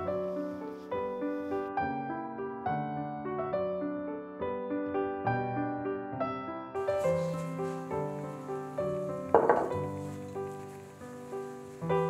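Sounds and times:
soft piano music: 0.0 - 12.0
bowl knocking on countertop: 9.3 - 10.1.

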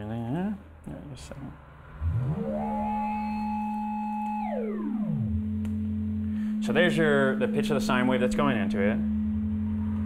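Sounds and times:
steady low synth tone: 1.2 - 10.0
pitch-shifted tone gliding: 1.6 - 10.0.

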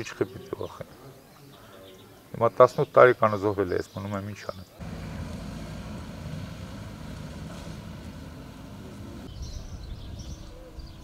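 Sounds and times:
low outdoor rumble: 4.8 - 10.1.

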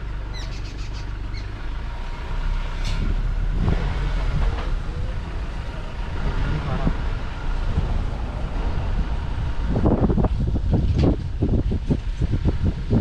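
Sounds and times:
low uneven rumble: 0.0 - 13.0
bird chirping: 0.3 - 1.5.

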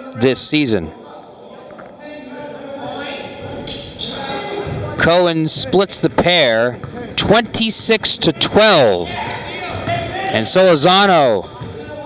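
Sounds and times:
basketball bouncing on wooden floor: 9.2 - 10.2.

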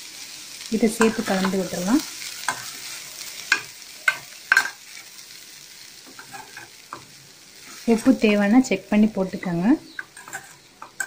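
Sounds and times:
metal spoon stirring in pan: 0.6 - 5.3, 6.0 - 8.2, 9.4 - 11.0.

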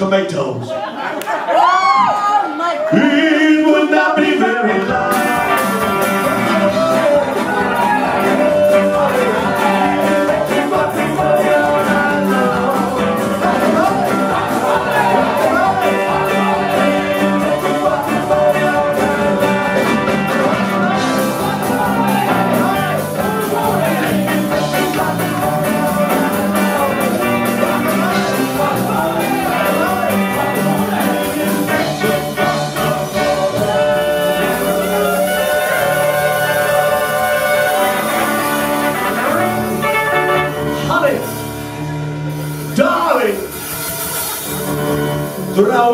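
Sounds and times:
drums: 0.0 - 45.9
band members singing together: 2.8 - 40.6
keyboards: 3.0 - 45.9
bass guitar: 4.8 - 45.9
electric guitar: 4.9 - 45.6
trombone: 5.0 - 41.6
tenor saxophone: 33.8 - 40.9.

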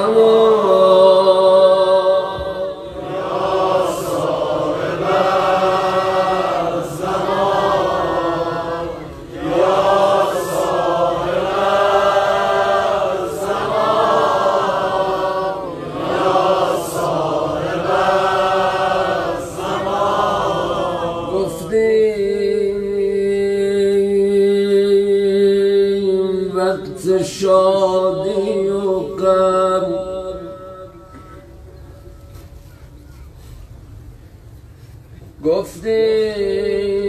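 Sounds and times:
man chanting a mourning lament: 35.4 - 37.0.

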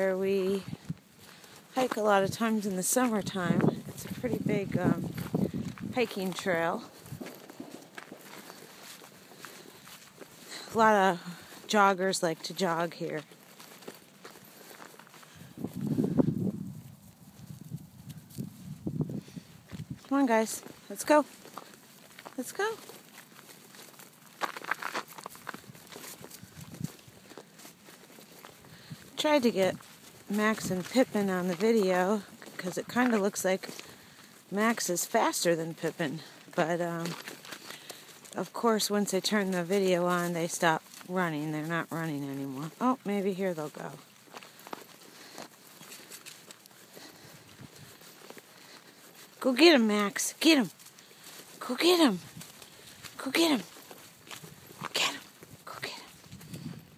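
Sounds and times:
footsteps on grass and snow: 0.0 - 56.9.

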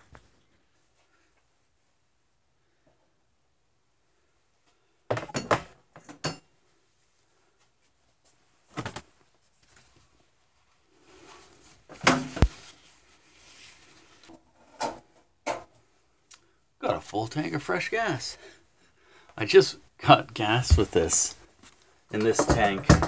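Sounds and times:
objects clattering on workbench: 5.1 - 6.5, 11.9 - 12.6, 22.2 - 23.0
paper towel rustling: 7.4 - 14.3.

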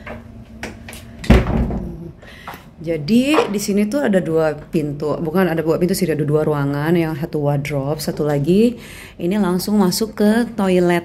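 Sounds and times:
door hitting with heavy thud: 1.2 - 2.0.

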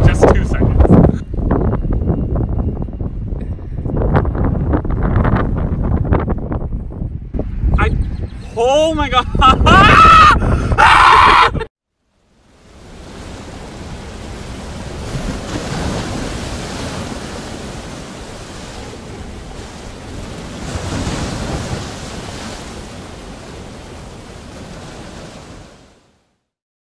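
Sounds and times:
ocean surf washing in: 12.2 - 26.3.

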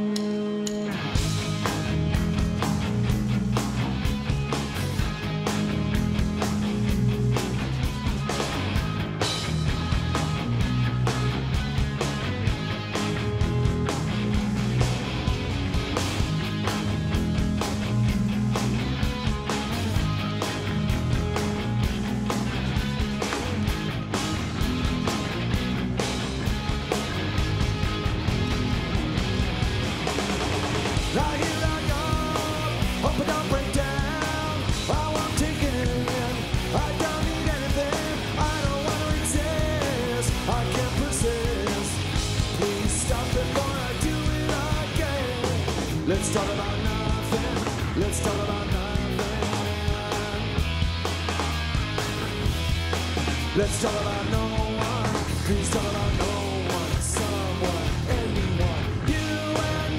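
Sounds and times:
bass guitar: 0.0 - 59.9
distorted electric guitars: 0.0 - 59.9
drums: 0.0 - 59.9
man singing: 31.0 - 50.6, 53.5 - 59.9.

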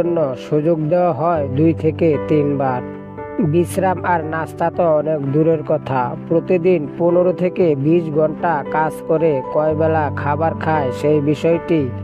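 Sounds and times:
background music: 0.0 - 12.0
person narrating: 0.0 - 12.0.

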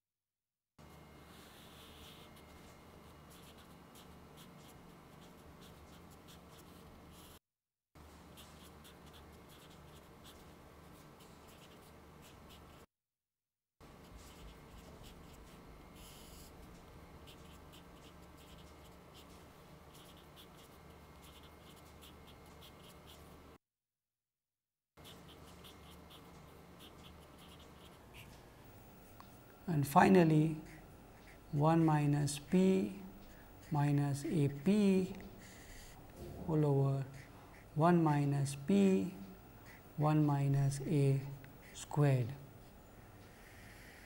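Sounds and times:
low electrical hum: 0.8 - 7.4, 8.0 - 12.8, 13.8 - 23.6, 25.0 - 44.0
marker pen scratching on paper: 0.8 - 7.4, 8.2 - 12.9, 13.9 - 23.4, 25.0 - 28.5, 29.1 - 36.1.

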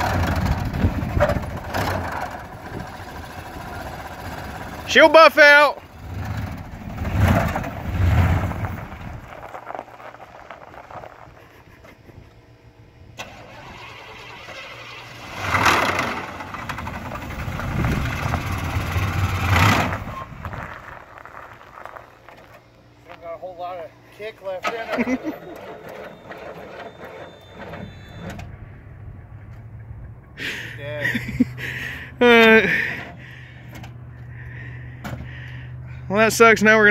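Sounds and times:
pickup truck engine revving: 0.0 - 11.8, 13.2 - 21.4.

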